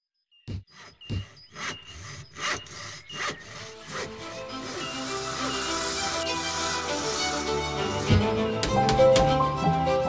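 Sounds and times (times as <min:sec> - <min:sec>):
hand saw cutting wood: 0:00.5 - 0:09.5
music: 0:03.0 - 0:10.0.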